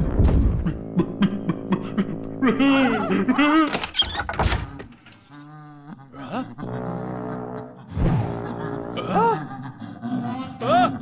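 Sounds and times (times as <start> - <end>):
wooden door opening: 3.6 - 5.3.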